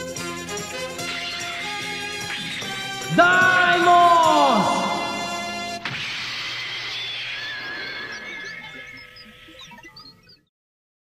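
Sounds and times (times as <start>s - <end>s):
rush of noise with warbling tones: 5.8s - 10.1s.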